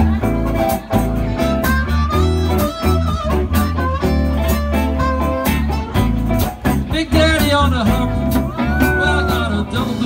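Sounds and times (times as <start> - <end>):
bass guitar: 0.0 - 10.0
drum kit: 0.0 - 10.0
electric guitars: 0.0 - 10.0
lead guitar bending notes: 0.0 - 10.0.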